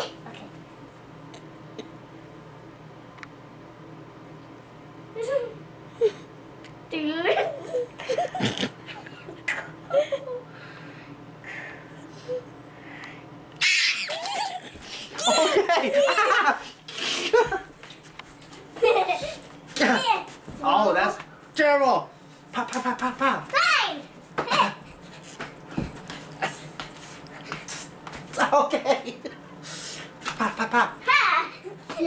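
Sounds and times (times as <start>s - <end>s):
girl giggling: 5.2s - 6.3s, 7.2s - 10.5s, 14.0s - 17.7s, 18.8s - 19.5s.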